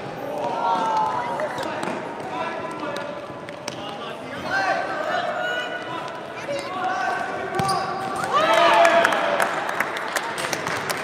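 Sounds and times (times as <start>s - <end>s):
voices shouting in echoing hall: 0.0s - 10.8s
shoes squeaking: 7.5s - 8.3s.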